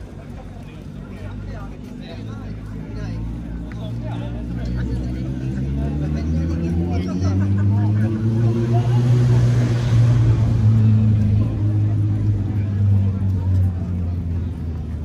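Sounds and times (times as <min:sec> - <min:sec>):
large engine droning hum: 0:00.0 - 0:15.0.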